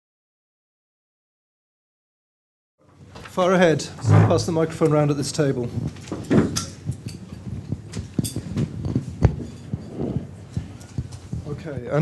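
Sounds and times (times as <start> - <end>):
deep thump: 4.0 - 4.5
small knocks and clinks: 6.0 - 10.2.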